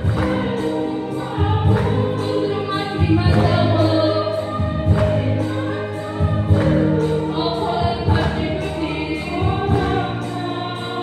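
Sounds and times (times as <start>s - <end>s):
women's choir singing a hymn: 0.0s - 11.0s.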